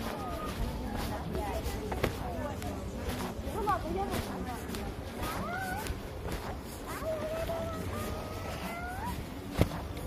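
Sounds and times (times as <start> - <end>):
footsteps on asphalt: 0.0 - 10.0.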